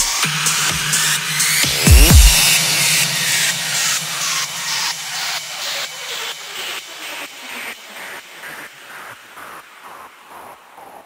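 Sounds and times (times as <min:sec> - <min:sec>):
pulsing white-noise sweep: 0:00.0 - 0:11.0.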